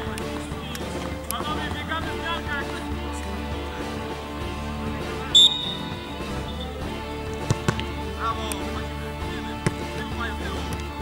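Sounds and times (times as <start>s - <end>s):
referee whistle blast: 5.2s - 6.8s
football kicked thuds: 7.4s - 8.0s, 9.6s - 10.0s.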